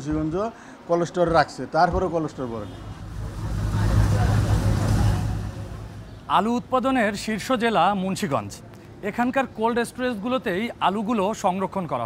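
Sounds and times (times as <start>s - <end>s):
motor vehicle rumble: 2.4s - 7.5s.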